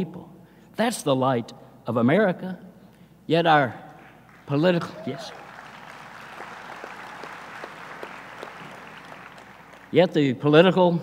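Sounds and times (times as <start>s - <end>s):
audience applauding: 4.3s - 10.1s.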